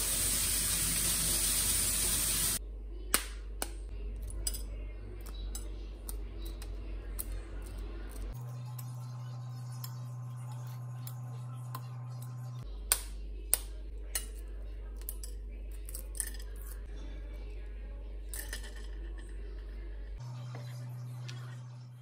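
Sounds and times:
steady low hum: 2.6 - 22.0.

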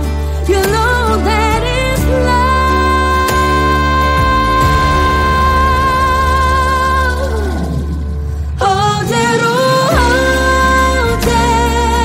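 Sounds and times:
woman singing ballad: 0.0 - 12.0.

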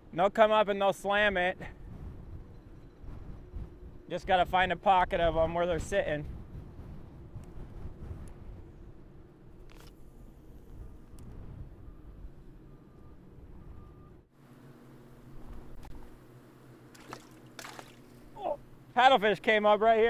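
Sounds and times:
wind buffeting microphone: 1.2 - 14.2.

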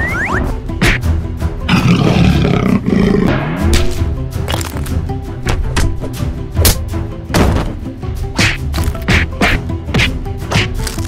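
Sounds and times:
background music: 0.0 - 11.0
dinosaur roar: 1.7 - 3.4.

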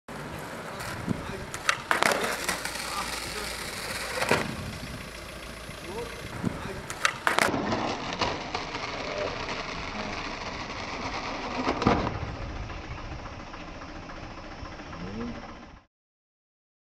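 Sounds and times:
skateboard knocking on asphalt: 0.1 - 9.6
outdoor background noise: 0.1 - 15.9.

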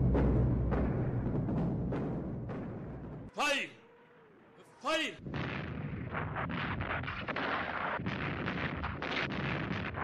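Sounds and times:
rapid massed gunfire: 5.2 - 10.0.

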